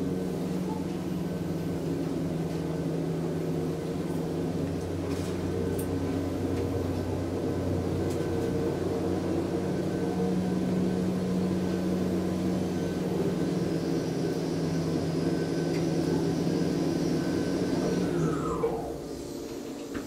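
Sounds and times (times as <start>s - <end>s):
elevator ride hum: 0.0s - 20.0s.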